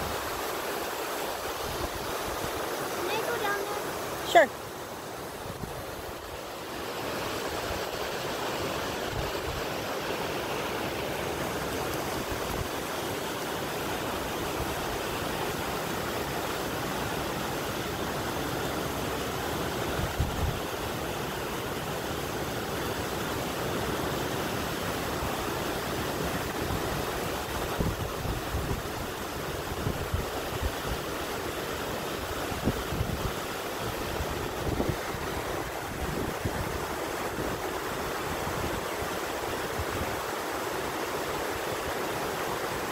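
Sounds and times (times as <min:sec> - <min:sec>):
waterfall and creek rushing: 0:00.0 - 0:42.9
wind bumps on microphone: 0:27.6 - 0:28.9.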